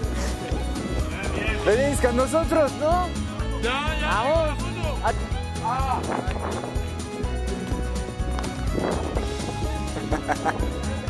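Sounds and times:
music with low beat: 0:00.0 - 0:11.0.

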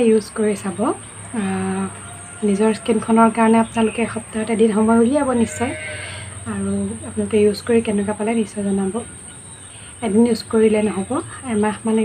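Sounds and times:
woman talking: 0:00.0 - 0:09.1, 0:09.9 - 0:12.0
woman breathing: 0:06.0 - 0:06.4, 0:09.6 - 0:10.0.

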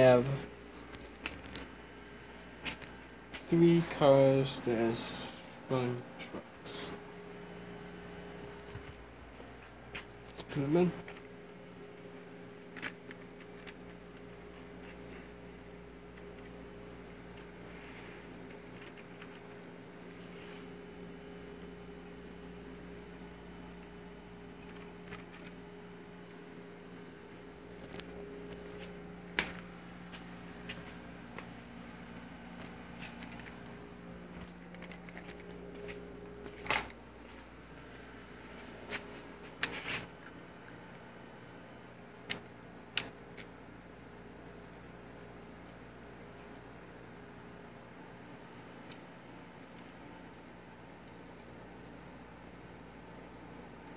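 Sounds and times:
faint steady hum: 0:00.0 - 0:53.9.

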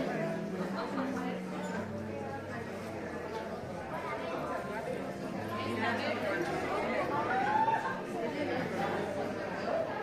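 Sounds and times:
indistinct chatter of shoppers: 0:00.0 - 0:10.0.

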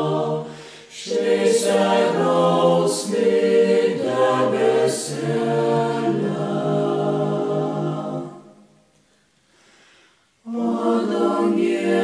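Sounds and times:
vocal ensemble singing a cappella: 0:00.0 - 0:08.9, 0:10.4 - 0:12.0.

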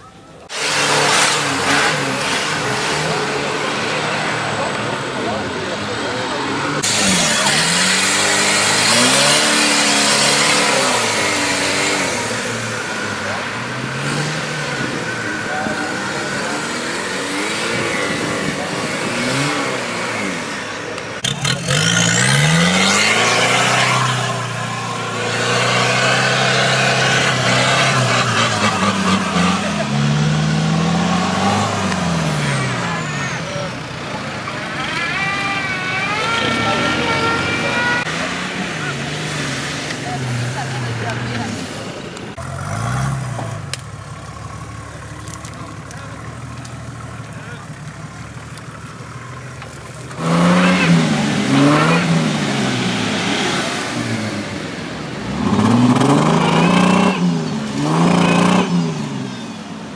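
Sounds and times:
off-road engines revving: 0:00.0 - 0:59.9.

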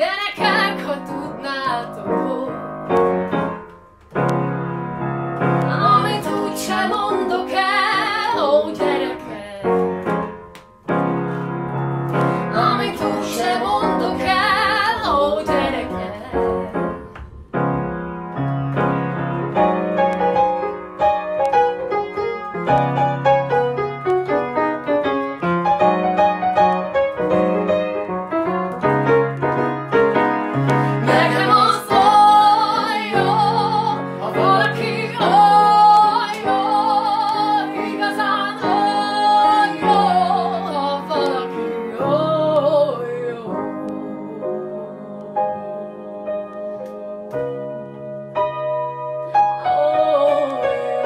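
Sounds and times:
woman singing with vibrato: 0:00.0 - 0:02.8, 0:05.7 - 0:09.8, 0:12.4 - 0:17.2, 0:30.9 - 0:47.4, 0:49.5 - 0:51.0
grand piano: 0:00.0 - 0:51.0.

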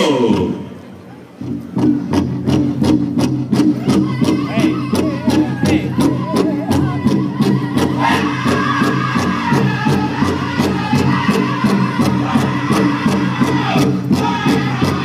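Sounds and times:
large drum beaten steadily: 0:01.4 - 0:15.0
group singing together: 0:04.1 - 0:15.0.

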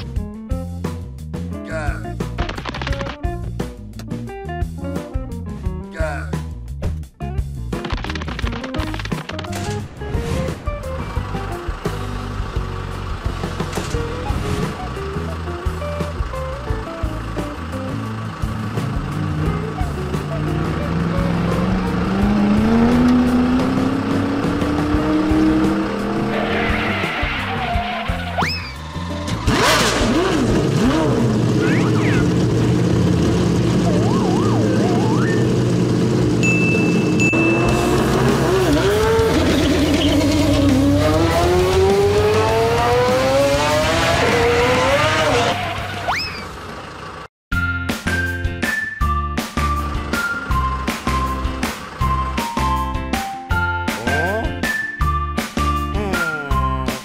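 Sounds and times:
background music: 0:00.0 - 0:30.8, 0:33.7 - 0:45.4, 0:47.5 - 0:57.0
car engine revving: 0:10.3 - 0:47.3
brief high steady tone: 0:36.4 - 0:38.0.

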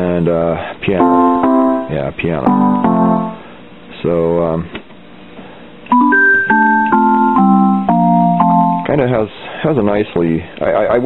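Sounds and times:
electronic piano chords: 0:01.0 - 0:03.5, 0:05.9 - 0:08.9.

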